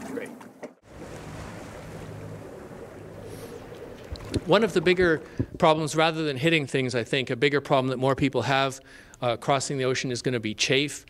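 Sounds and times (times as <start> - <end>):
water wash: 0.8 - 6.8
wind noise: 0.9 - 5.6
steady low hum: 0.9 - 6.5.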